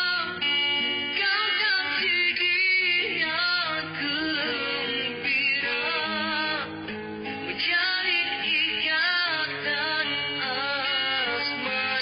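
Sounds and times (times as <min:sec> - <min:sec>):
man singing into a microphone: 0:00.0 - 0:00.5, 0:01.1 - 0:12.0
guitar backing music: 0:00.0 - 0:12.0.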